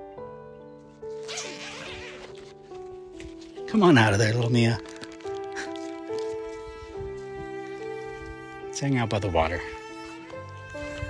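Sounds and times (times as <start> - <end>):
soft background music: 0.0 - 11.0
zipper being pulled open: 1.1 - 2.7, 4.8 - 7.0.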